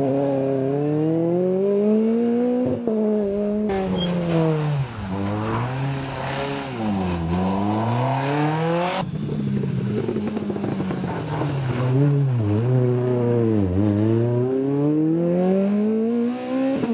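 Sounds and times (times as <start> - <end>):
rally car engine revving: 0.0 - 16.9.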